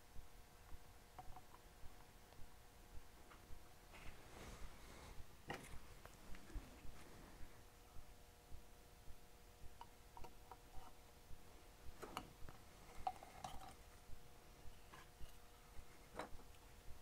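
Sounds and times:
faint hum: 0.0s - 17.0s.

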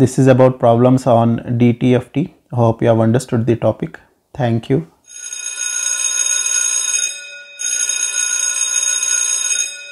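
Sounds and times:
metallic bell-like ringing: 6.6s - 9.9s.

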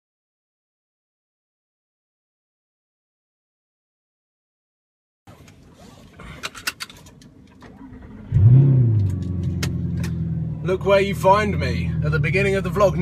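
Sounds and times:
car engine starting and idling: 5.3s - 13.0s
sharp clicks and rattles: 6.2s - 8.1s, 9.0s - 10.2s.

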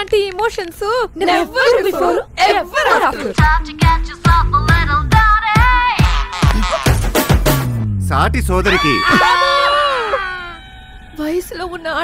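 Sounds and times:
people screaming: 8.6s - 11.4s.

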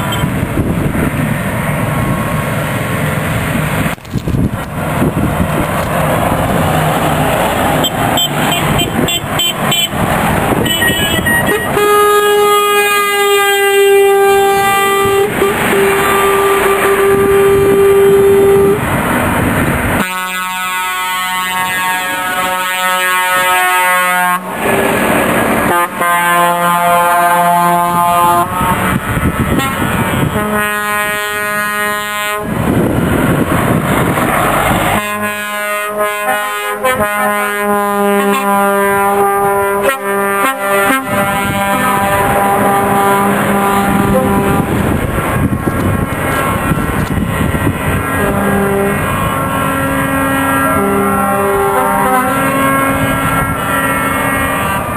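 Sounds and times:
truck air horn blasts: 0.0s - 0.4s, 7.8s - 18.9s, 20.0s - 24.8s, 25.6s - 32.8s, 34.8s - 45.0s, 48.0s - 54.9s
lorries driving past: 0.0s - 54.9s.

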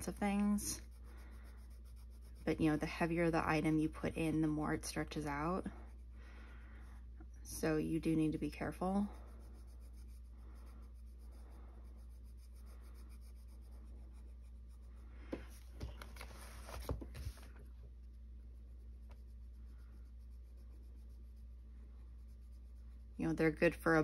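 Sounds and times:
colored pencil scratching paper: 0.0s - 24.0s
hand rubbing and knocking paper: 15.2s - 18.0s.

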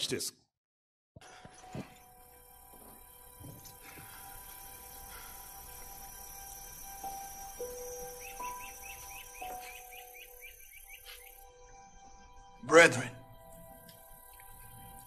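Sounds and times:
outdoor ambience: 1.2s - 15.0s.

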